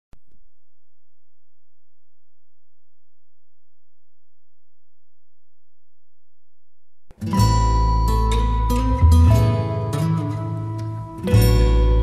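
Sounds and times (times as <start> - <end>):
low electronic sine tone: 0.1 - 9.6.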